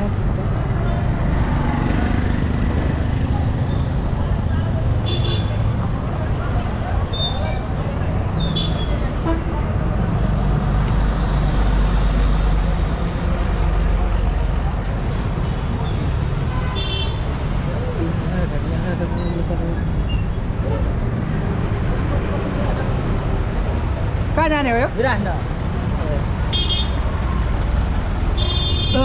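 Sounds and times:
bus and vehicle engines rumbling: 0.0 - 29.0.

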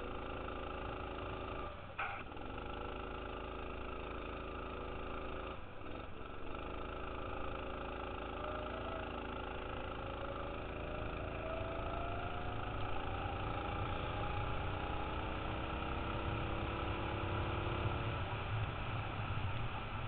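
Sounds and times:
go-kart engine accelerating: 0.0 - 20.0.

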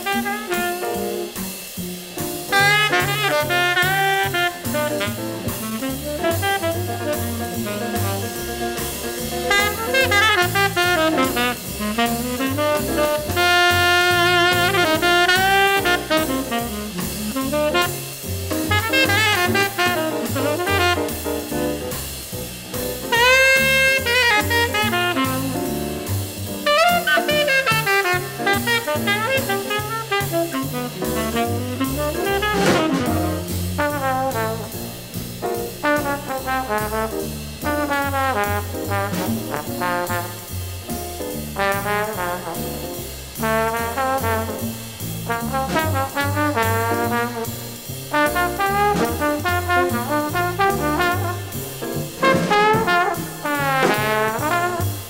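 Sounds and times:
trombone playing quick runs: 0.0 - 1.4, 2.2 - 55.0
walking bass line: 2.0 - 55.0.

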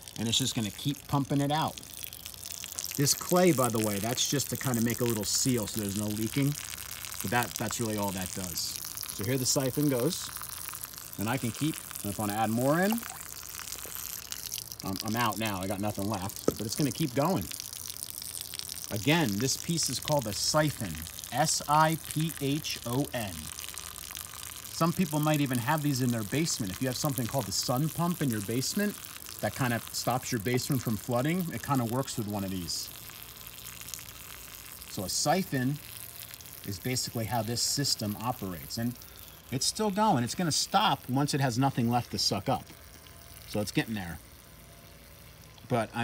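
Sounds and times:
water pouring and splashing: 0.0 - 46.0
water stream draining onto ground: 0.0 - 46.0.

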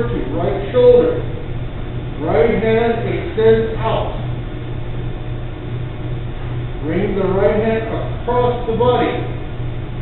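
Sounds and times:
low throbbing hum: 0.0 - 10.0.

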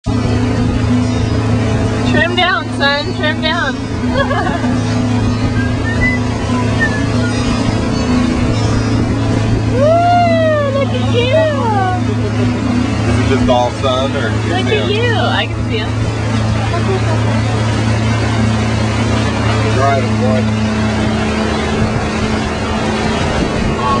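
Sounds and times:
motorboat engine drone: 0.0 - 24.0
wind and water rushing: 0.0 - 24.0.

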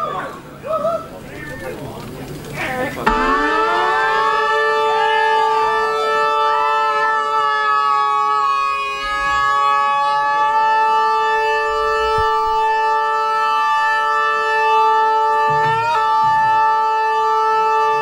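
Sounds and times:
upward pitch slide: 3.1 - 6.4
band playing drone of held notes: 3.1 - 7.5.

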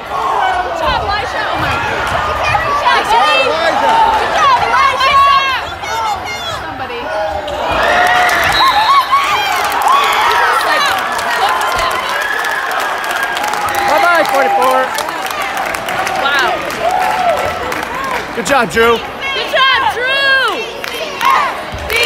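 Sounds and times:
crowd voices: 0.0 - 22.0
crowd clapping: 8.0 - 19.1, 20.6 - 22.0.

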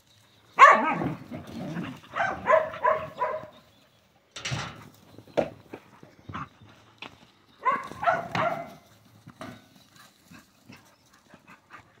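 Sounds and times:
dingoes yelping: 0.6 - 3.6.

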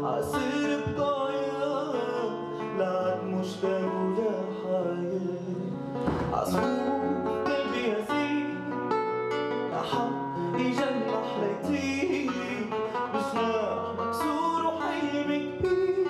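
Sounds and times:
classical guitar strumming: 0.0 - 16.0
man singing: 0.0 - 16.0.

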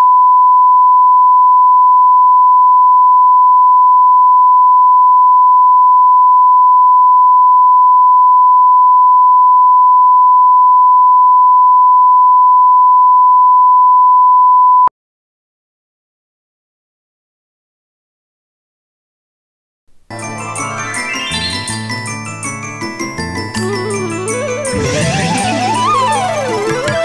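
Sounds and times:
steady line-up tone beep: 0.0 - 14.9.

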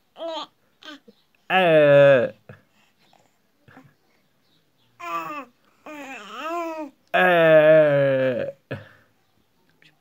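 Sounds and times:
baby babbling: 0.1 - 1.2, 5.0 - 7.0.

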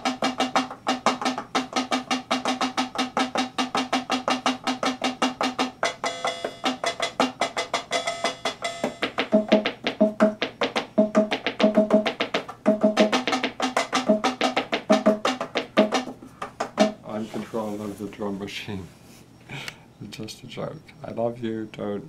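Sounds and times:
fast woody tapping by hand: 0.0 - 17.0.

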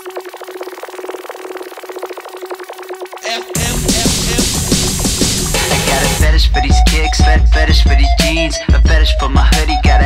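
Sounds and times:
rapid stuttering buzz: 0.1 - 7.7.

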